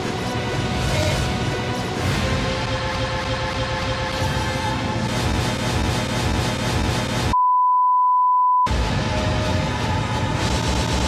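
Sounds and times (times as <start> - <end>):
dense trailer music: 0.0 - 7.4, 8.7 - 11.0
steady censor bleep tone: 7.4 - 8.7.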